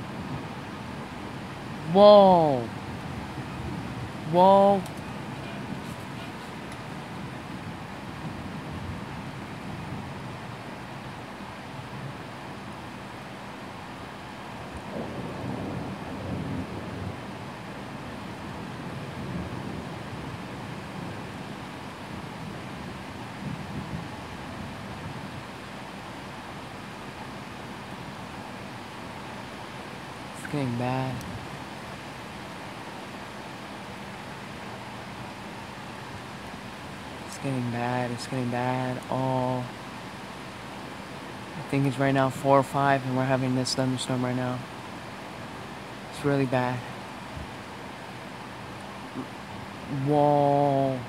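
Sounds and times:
heavy rain: 0.0 - 51.0
thunder rumbling: 14.7 - 25.4.

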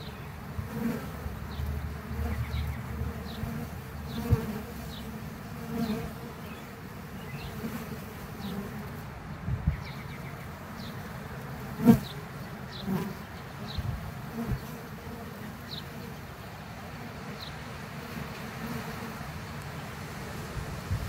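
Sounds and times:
honey bees buzzing: 0.0 - 21.0.

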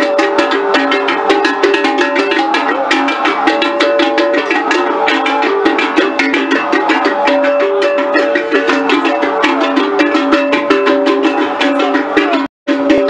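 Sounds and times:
fast drum and percussion strokes: 0.0 - 13.0
stepping melodic line: 0.0 - 13.0.

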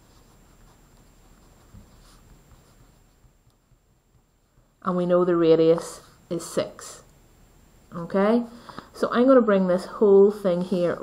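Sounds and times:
pen scratching on paper: 0.0 - 4.5.

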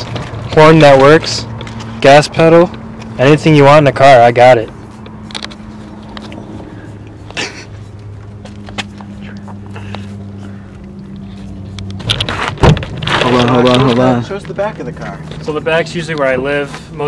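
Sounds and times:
car engine humming: 0.0 - 17.0.

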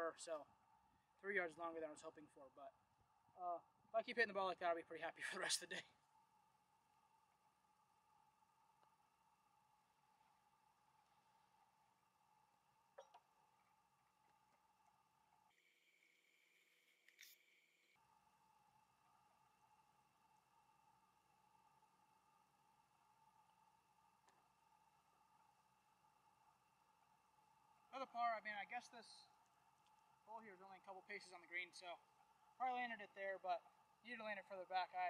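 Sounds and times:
faint steady hum: 0.0 - 35.0.

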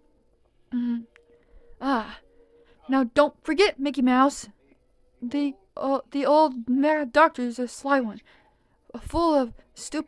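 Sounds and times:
person sighing: 0.7 - 1.2.

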